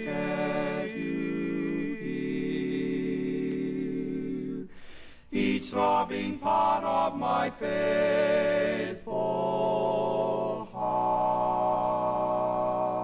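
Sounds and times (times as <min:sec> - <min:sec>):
vocal quartet singing a cappella: 0:00.0 - 0:13.0.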